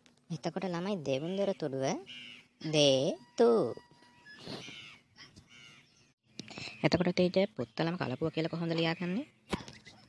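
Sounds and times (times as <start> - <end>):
crow cawing faintly: 1.2 - 6.9.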